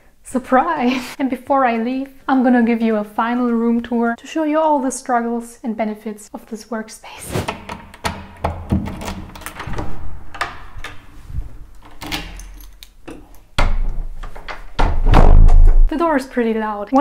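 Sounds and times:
door handle and latch clicks: 7.7 - 14.9
heavy door thuds shut: 8.1 - 12.4, 14.8 - 15.9.

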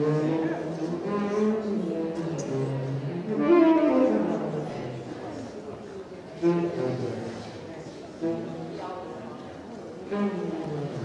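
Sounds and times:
low jazz horn notes: 0.0 - 5.1, 6.4 - 7.6, 8.2 - 8.8, 10.0 - 11.0
murmur of voices: 0.0 - 11.0.

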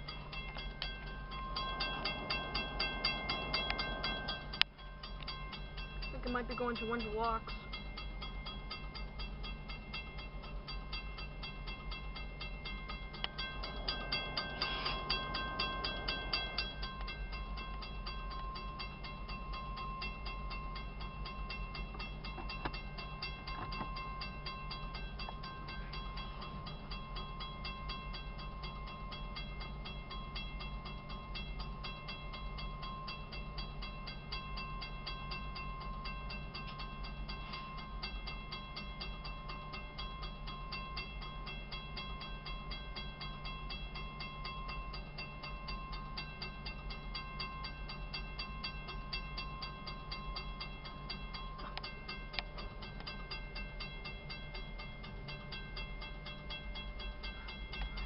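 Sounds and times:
locomotives idling: 0.0 - 39.3
rapid even ticking: 0.0 - 58.0
steady high tone: 0.0 - 58.0
rush of noise: 0.6 - 5.6, 13.2 - 17.9.

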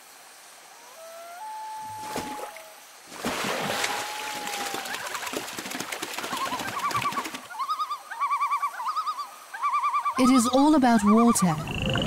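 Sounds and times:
splashing and flapping on water: 1.8 - 7.9
warbling animal call: 6.3 - 12.0.

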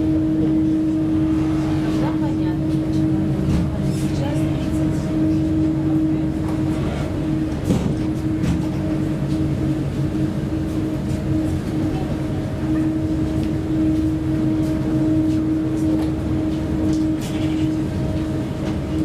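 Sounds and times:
ferry engines droning: 0.0 - 19.0
passengers' voices: 0.0 - 19.0.

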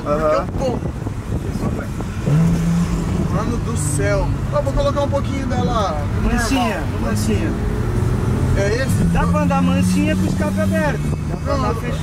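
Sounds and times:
car engine accelerating: 0.9 - 12.0.

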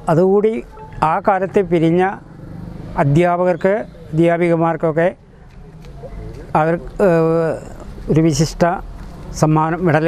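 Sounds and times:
man speaking: 0.0 - 2.2, 3.0 - 5.2, 6.5 - 8.8, 9.4 - 10.0
low background noise: 0.0 - 10.0.

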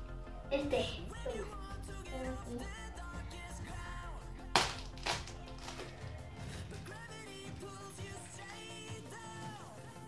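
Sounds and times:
background music: 0.0 - 10.0
eggshell cracking: 4.5 - 6.1.

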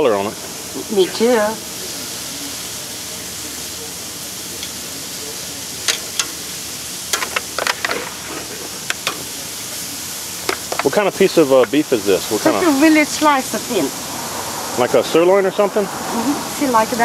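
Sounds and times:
meat sizzling on grill: 0.0 - 17.0.

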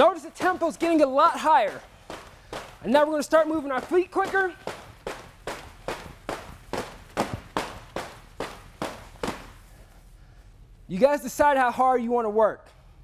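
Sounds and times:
battle rope slapping floor: 0.0 - 9.9.

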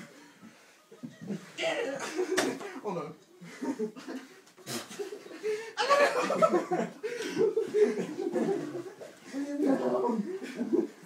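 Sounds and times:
people laughing: 0.1 - 11.0.

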